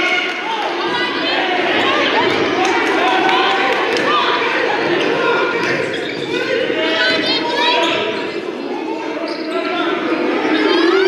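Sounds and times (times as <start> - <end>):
voices in a hall: 0.0 - 11.0.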